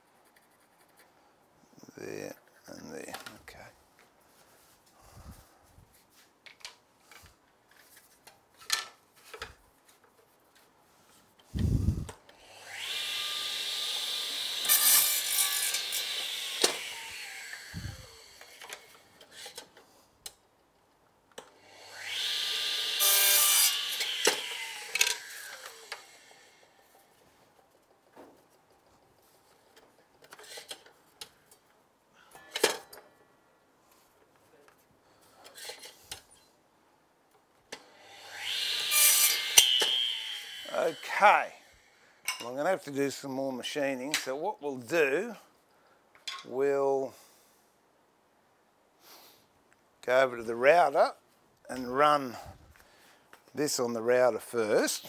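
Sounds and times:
mitre saw cutting timber: 0:11.6 - 0:19.5, 0:21.6 - 0:26.7, 0:37.8 - 0:41.9, 0:54.6 - 0:55.0
saw blade winding down whine: 0:11.7 - 0:19.0, 0:21.7 - 0:26.8, 0:37.8 - 0:42.0.

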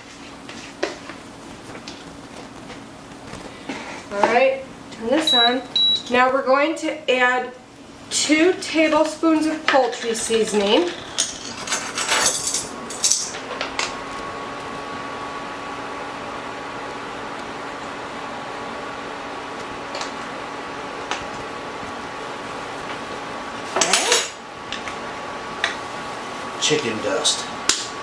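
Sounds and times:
electric hot plate humming: 0:00.0 - 0:28.0.

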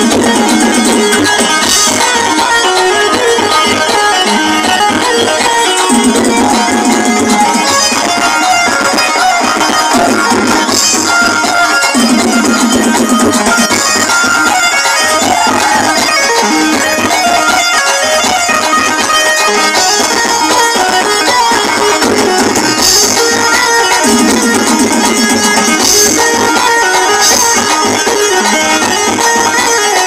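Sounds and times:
dance music from sound system: 0:00.0 - 0:18.4.

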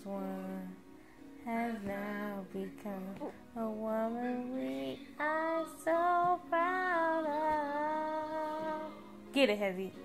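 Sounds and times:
woman singing: 0:00.0 - 0:09.0.

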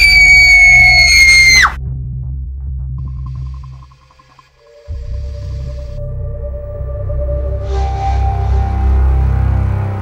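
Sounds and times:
girl screaming high-pitched: 0:00.0 - 0:01.8.

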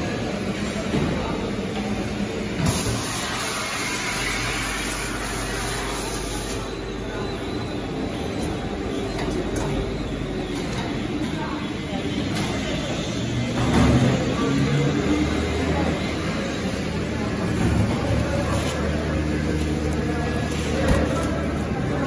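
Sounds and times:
conveyor machinery running: 0:00.0 - 0:22.0.

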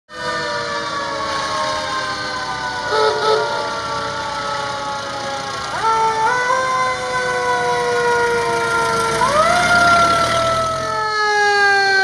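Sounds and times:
mechanical siren wailing: 0:00.1 - 0:12.0.

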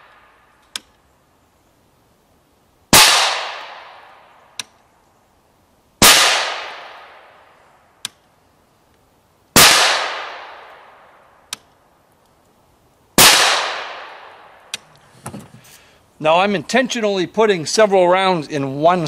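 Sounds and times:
suppressed rifle shots: 0:02.9 - 0:04.0, 0:06.0 - 0:07.2, 0:09.6 - 0:10.7, 0:13.2 - 0:14.4.

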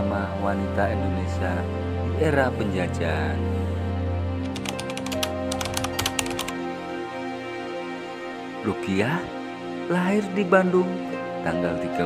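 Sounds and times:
background music: 0:00.0 - 0:12.0
typing clicks: 0:04.4 - 0:06.5.

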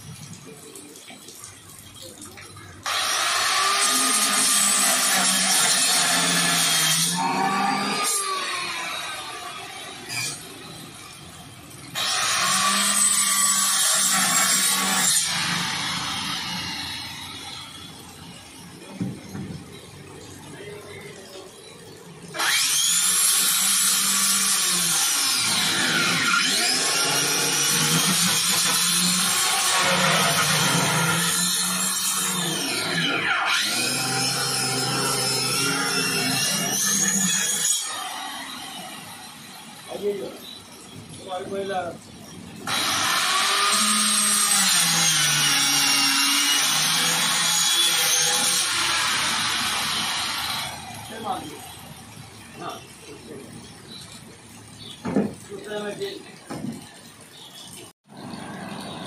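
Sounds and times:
angle grinder cutting plastic: 0:02.8 - 0:10.8, 0:11.9 - 0:18.7, 0:22.3 - 0:41.8, 0:42.6 - 0:51.9.

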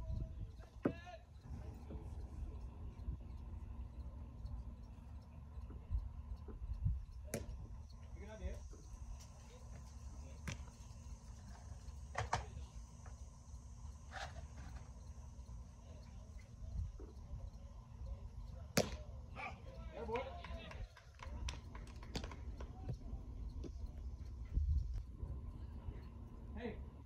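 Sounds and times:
wind rumbling on microphone: 0:00.0 - 0:00.8, 0:01.4 - 0:09.6, 0:16.5 - 0:17.6, 0:20.7 - 0:26.4
distant voices: 0:00.0 - 0:27.0
sharp pop of ball in glove: 0:18.8 - 0:19.0.

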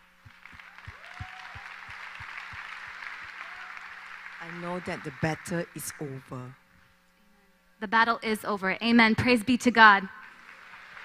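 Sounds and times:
audience applause: 0:00.0 - 0:06.3, 0:10.3 - 0:11.0
faint mains hum: 0:00.0 - 0:11.0.

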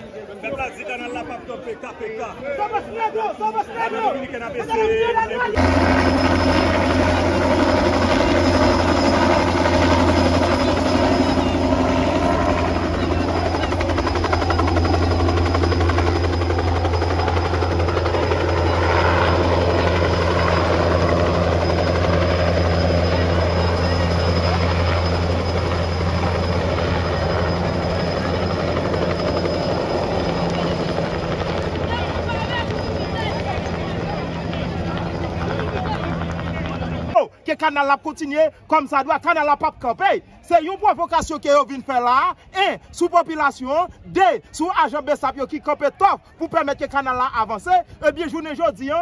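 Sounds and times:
helicopter flying overhead: 0:00.0 - 0:49.0.

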